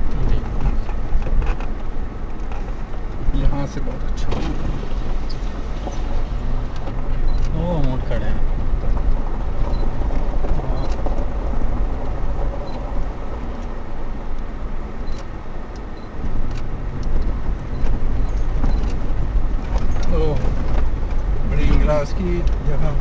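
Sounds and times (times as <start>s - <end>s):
vehicle rumbling over gravel: 0.0s - 23.0s
people talking: 0.1s - 0.5s, 3.3s - 4.6s, 7.4s - 8.4s, 10.6s - 11.0s, 20.0s - 20.5s, 21.5s - 23.0s.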